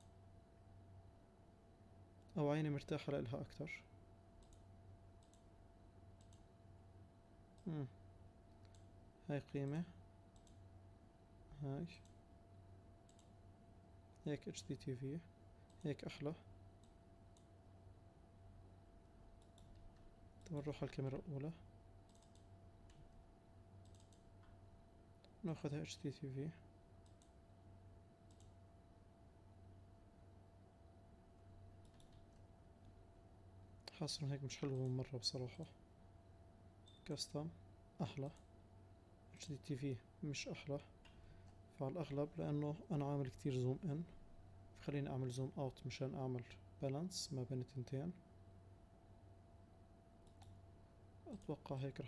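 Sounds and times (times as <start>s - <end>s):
low steady hum: 0.0s - 52.0s
computer mouse clicks: 4.4s - 5.5s, 6.2s - 6.5s, 8.5s - 8.9s, 10.3s - 10.6s, 13.0s - 13.3s, 16.8s - 17.5s, 19.4s - 20.6s, 22.0s - 23.2s, 23.8s - 24.6s, 27.0s - 27.4s, 28.2s - 28.6s, 31.8s - 33.0s, 34.6s - 35.0s, 50.2s - 50.6s.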